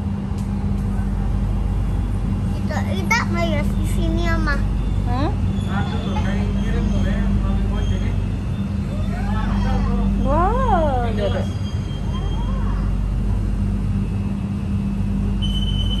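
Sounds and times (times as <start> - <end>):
train carriage running hum: 0.0 - 16.0
steady high beep: 15.4 - 16.0.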